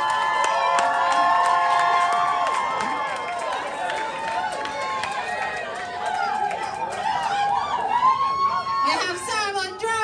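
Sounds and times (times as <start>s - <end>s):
audience cheering and whooping: 0.0s - 9.2s.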